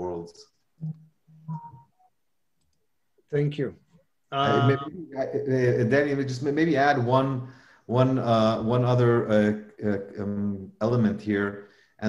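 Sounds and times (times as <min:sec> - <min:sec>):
voice murmur over call line: 0:04.4 - 0:11.5.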